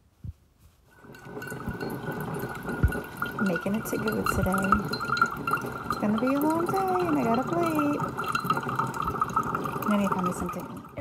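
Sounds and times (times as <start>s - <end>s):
coffee dripping into metal tumbler: 0.9s - 11.0s.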